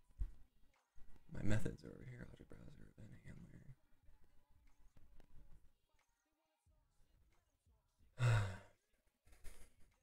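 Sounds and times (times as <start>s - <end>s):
man sighing: 8.2s - 8.8s.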